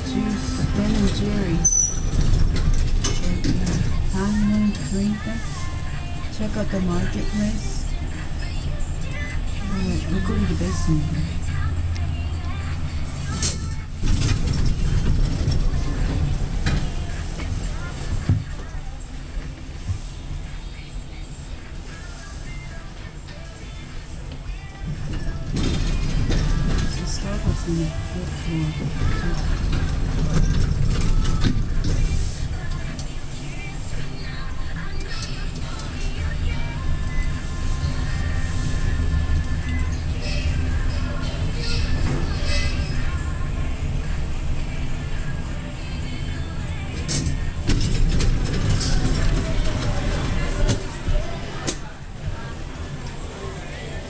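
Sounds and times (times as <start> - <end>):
background music: 0.0 - 51.8
elevator low rumble: 0.0 - 54.0.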